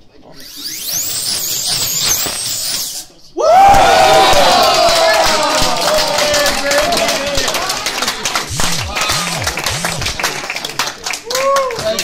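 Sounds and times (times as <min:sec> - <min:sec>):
slot car motor whining: 0:00.3 - 0:03.0, 0:08.5 - 0:10.3.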